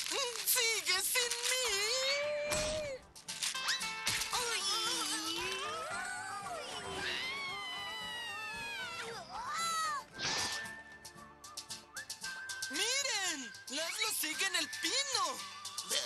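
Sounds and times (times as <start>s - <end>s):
cartoon music: 3.6s - 13.1s
character wavering vocal cries: 4.6s - 10.1s.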